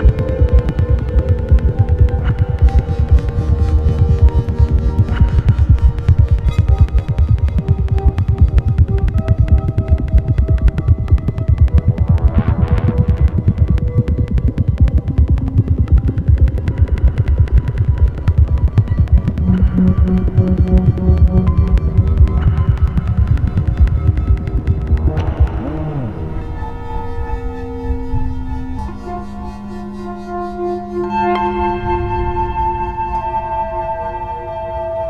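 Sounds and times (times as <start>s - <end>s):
experimental synthesizer music: 0.0s - 35.0s.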